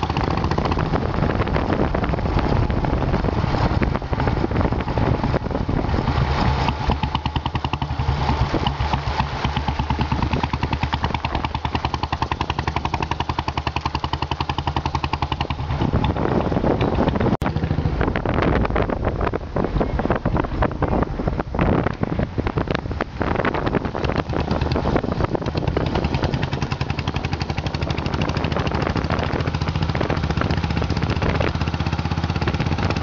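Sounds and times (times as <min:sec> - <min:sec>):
motorcycle engine running: 0:00.0 - 0:33.0
road and wind noise: 0:00.0 - 0:33.0.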